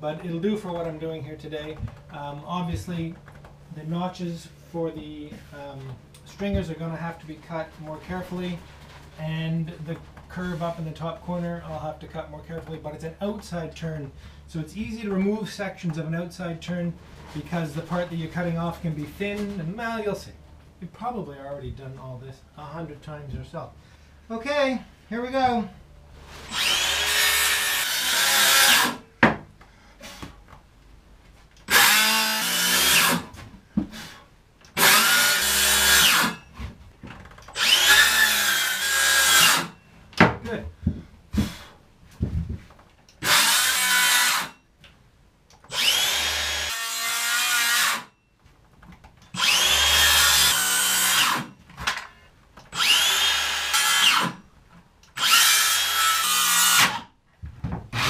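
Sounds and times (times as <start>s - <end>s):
circular saw cutting plywood: 26.3s - 29.0s, 31.6s - 33.3s, 34.7s - 36.5s, 37.5s - 39.8s, 43.2s - 44.6s, 45.7s - 48.1s, 49.3s - 51.6s, 52.7s - 54.4s, 55.1s - 57.1s.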